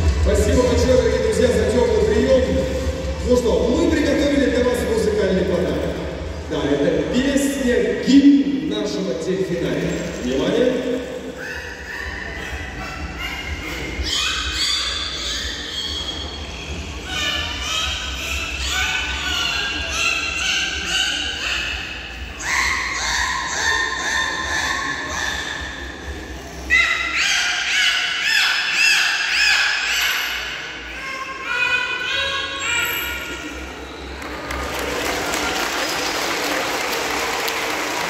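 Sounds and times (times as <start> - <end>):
dolphins whistling: 11.2 - 34.2.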